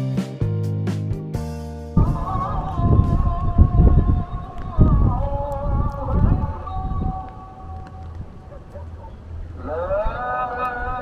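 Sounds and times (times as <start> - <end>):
distant chanting over loudspeaker: 2.0 - 11.0
wind rumble on microphone: 2.0 - 11.0.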